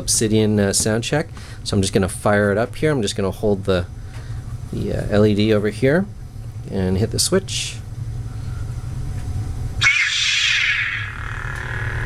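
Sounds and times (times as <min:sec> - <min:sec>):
lightsaber ignition whoosh and hum: 0:09.8 - 0:12.0.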